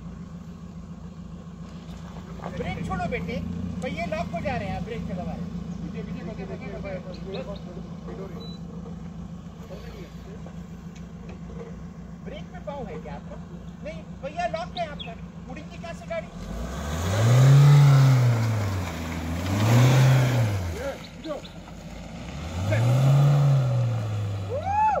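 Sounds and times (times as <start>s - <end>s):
engine idling and revving: 0.0s - 25.0s.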